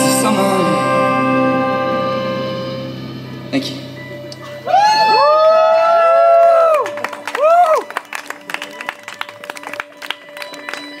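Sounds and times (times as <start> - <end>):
steady held tones: 0.0 - 6.2
audience clapping: 6.2 - 11.0.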